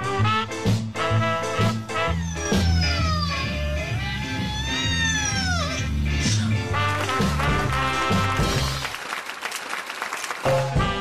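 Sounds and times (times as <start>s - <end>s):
swing music: 0.0s - 9.0s, 10.3s - 11.0s
cat meowing: 1.6s - 6.4s.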